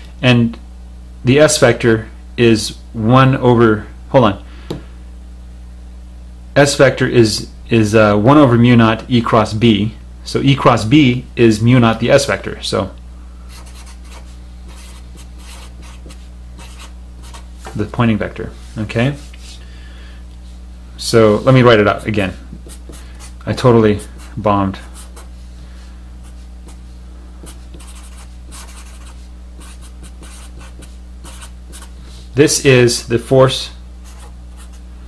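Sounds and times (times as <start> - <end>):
low electrical hum: 0.0 - 35.0
marker writing on paper: 13.5 - 17.5, 22.6 - 23.4, 24.1 - 25.3, 27.4 - 32.0, 34.0 - 34.8.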